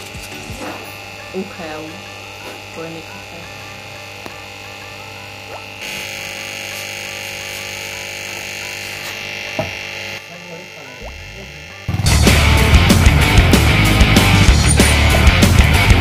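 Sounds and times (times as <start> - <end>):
aquarium air pump humming: 0.0 - 12.0.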